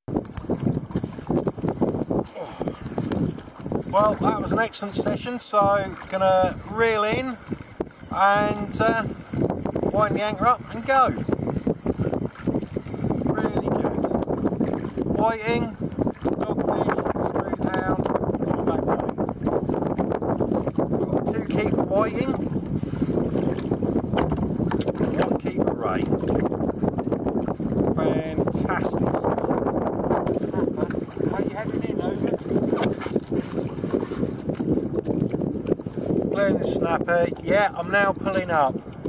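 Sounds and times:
water slapping against kayak: 0.1s - 39.0s
wind buffeting microphone: 0.1s - 39.0s.

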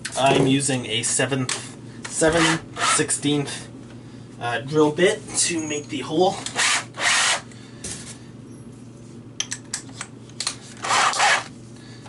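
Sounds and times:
cordless drill rasping burst: 6.5s - 7.4s, 10.8s - 11.5s
drill clicks: 10.8s - 11.5s.

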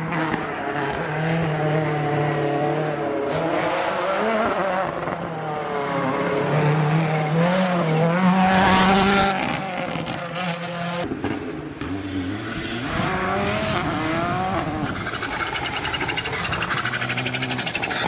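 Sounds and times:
rally car engine at full throttle: 0.0s - 18.0s.

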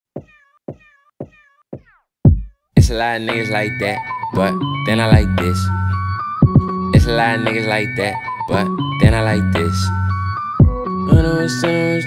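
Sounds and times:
hip-hop kick drum hits: 0.2s - 3.1s, 5.1s - 5.4s, 6.4s - 7.2s, 9.0s - 9.3s, 10.6s - 11.4s.

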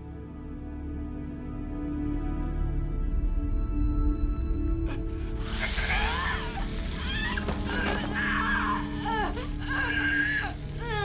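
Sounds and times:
low music drone: 0.0s - 11.0s
boy crying in pain: 5.7s - 11.0s.

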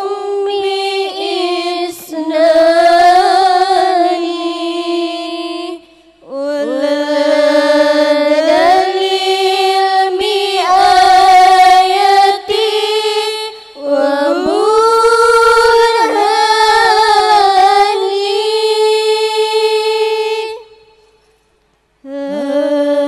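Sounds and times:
woman singing into a microphone: 0.0s - 20.8s, 22.0s - 23.0s.

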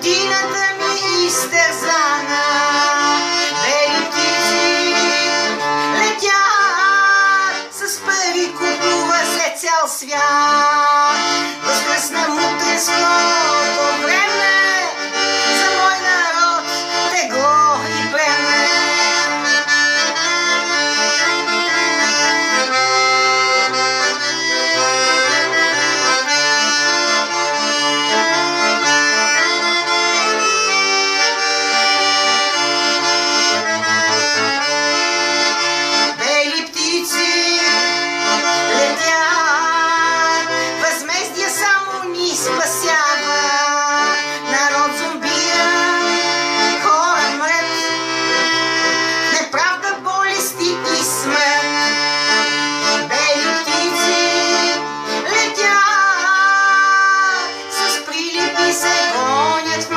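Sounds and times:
accordion playing folk music: 0.0s - 59.9s.

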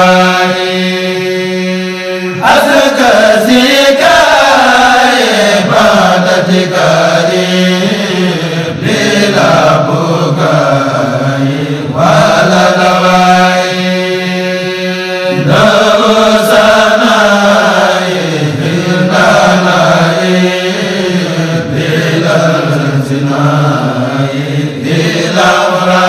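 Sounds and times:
voices chanting: 0.0s - 26.0s.

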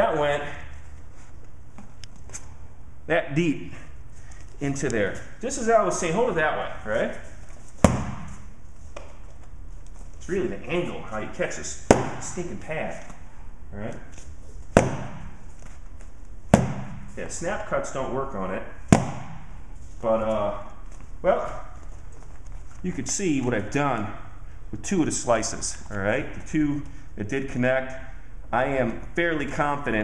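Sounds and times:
low background hum: 0.0s - 30.0s
knife smacking punching mitt: 7.8s - 8.4s, 11.9s - 12.4s, 14.7s - 15.4s, 16.5s - 17.1s, 18.9s - 19.4s.

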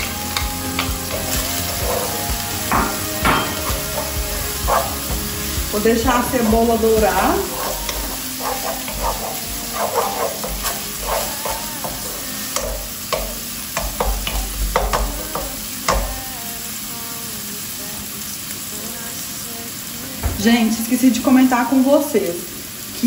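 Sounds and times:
onion sizzling in frying pan: 0.0s - 23.0s
wooden spoon scraping pan: 0.8s - 5.5s, 6.2s - 14.8s.

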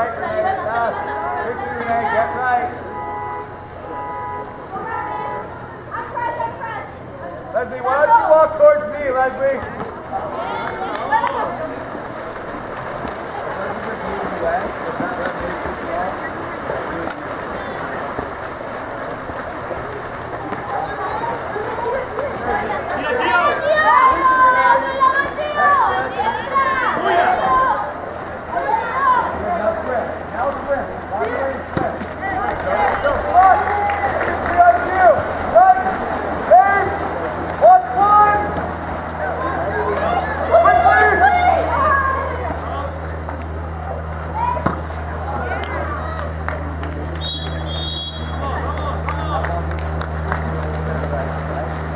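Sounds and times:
water splashing: 0.0s - 51.9s
people shouting: 20.6s - 29.5s, 32.2s - 43.0s.

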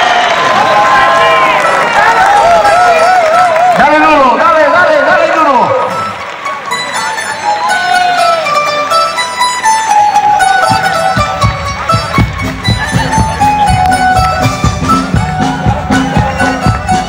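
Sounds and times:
crowd shouting and cheering: 0.0s - 17.0s
plucked string melody: 5.9s - 17.0s.

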